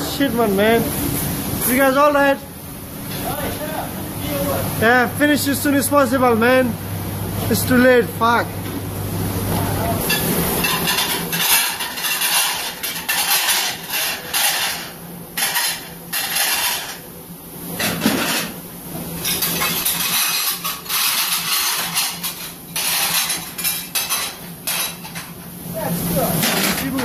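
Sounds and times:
steady low hum: 0.0s - 27.0s.

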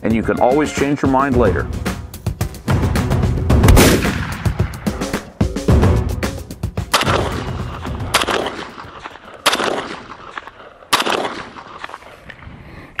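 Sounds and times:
rifle gunshots: 3.6s - 4.8s, 6.9s - 12.0s.

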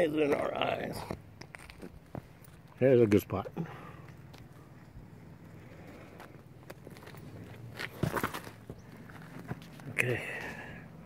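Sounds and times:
low steady hum: 0.0s - 11.0s
footsteps scuffing on stone: 6.2s - 9.9s.

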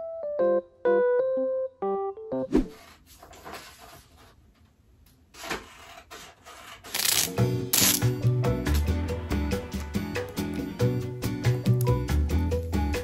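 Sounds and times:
electric piano music: 0.0s - 2.5s
music: 0.0s - 2.7s, 7.0s - 13.0s
soft rustling and scraping: 2.7s - 4.7s
packing tape ripping: 6.9s - 8.1s.

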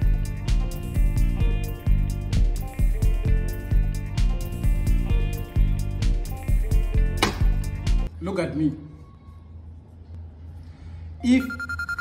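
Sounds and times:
background music with steady beat: 0.0s - 8.1s.

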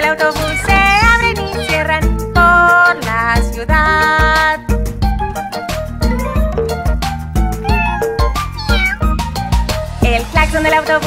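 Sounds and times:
children's song backing music: 0.0s - 6.5s, 9.1s - 11.0s
cartoon cats meowing: 0.4s - 1.9s, 7.6s - 9.3s.

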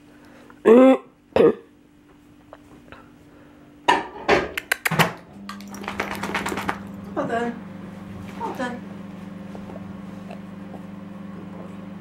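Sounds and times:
steady low hum: 5.2s - 12.0s.

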